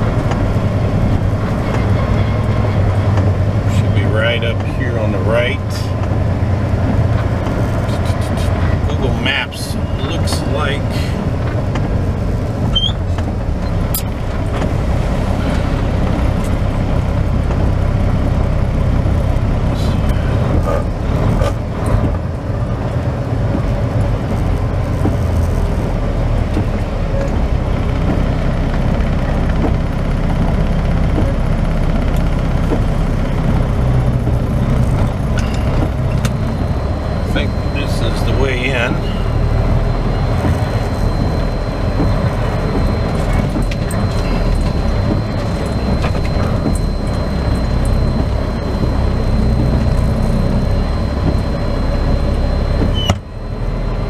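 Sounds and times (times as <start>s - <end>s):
diesel truck engine running: 0.0s - 54.0s
tyres on wet street: 0.0s - 54.0s.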